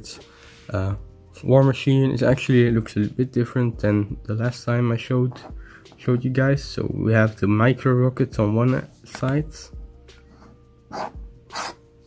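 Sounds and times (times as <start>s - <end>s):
sniffs through the nose: 10.2s - 11.8s.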